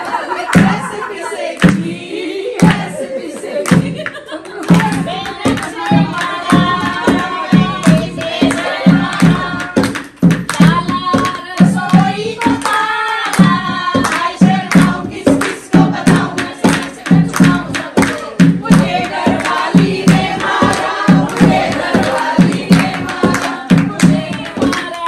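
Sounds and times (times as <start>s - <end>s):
women singing folk song: 0.0s - 25.0s
hands clapping: 1.6s - 1.9s, 2.6s - 25.0s
hand drum beating: 4.7s - 25.0s.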